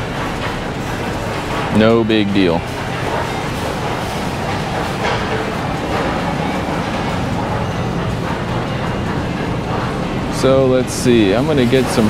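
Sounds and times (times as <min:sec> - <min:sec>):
faint music: 0:00.0 - 0:12.0
shoppers' voices: 0:00.8 - 0:12.0.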